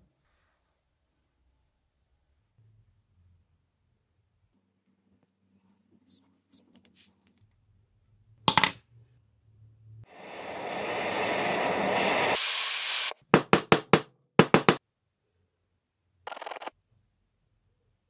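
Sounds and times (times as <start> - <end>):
torch flame hissing: 10.1 - 13.2.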